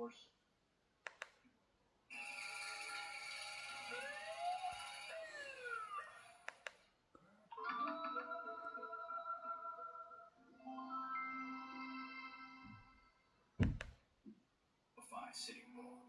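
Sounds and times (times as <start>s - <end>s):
sharp clicks: 1.0s - 1.5s, 6.4s - 6.9s.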